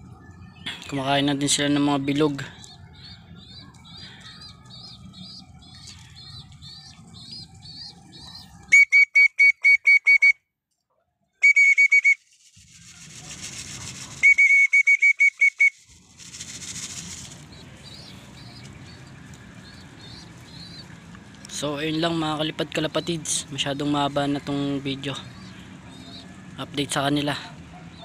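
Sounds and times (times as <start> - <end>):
faint rustling: 15.8 - 21.5.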